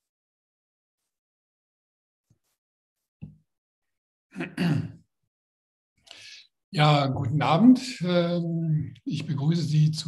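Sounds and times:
man clearing his throat: 4.4 - 5.0.

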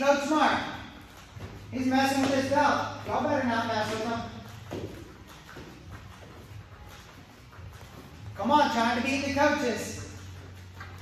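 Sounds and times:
bare feet thudding on hard floor: 1.2 - 8.2.

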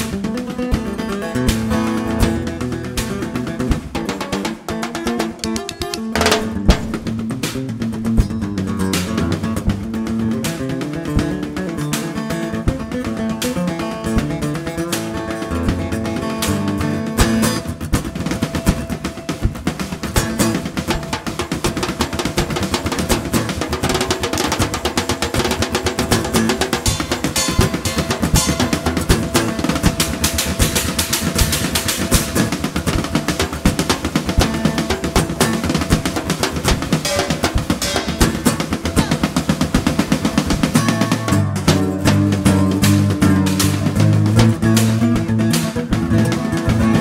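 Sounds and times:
acoustic guitar: 0.0 - 47.0
metal cans and tins drummed: 0.0 - 47.0.

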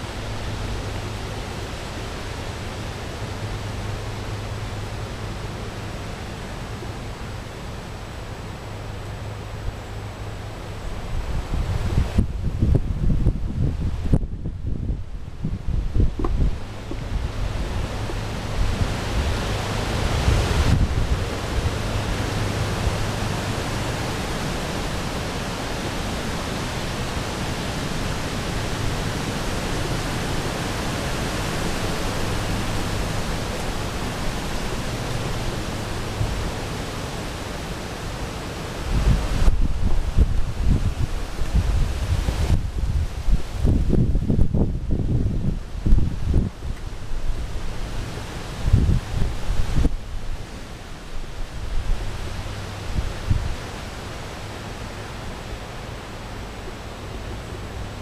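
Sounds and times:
wind buffeting microphone: 10.8 - 26.2, 38.8 - 53.9.

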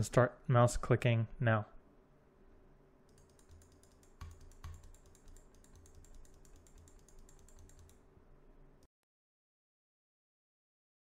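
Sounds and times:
faint steady hum: 0.0 - 8.9
computer mouse clicks: 3.1 - 8.0.

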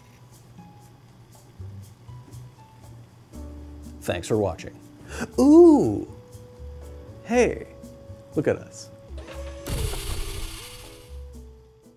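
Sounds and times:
background music with steady notes: 0.0 - 11.9
sci-fi metal door sliding: 9.2 - 11.2.

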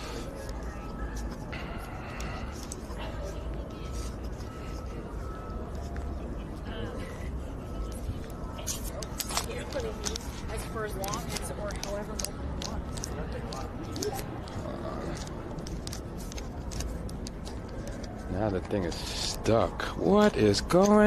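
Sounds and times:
faint voices of passers-by: 0.0 - 21.0
low street rumble: 0.0 - 21.0
man talking: 18.3 - 21.0.

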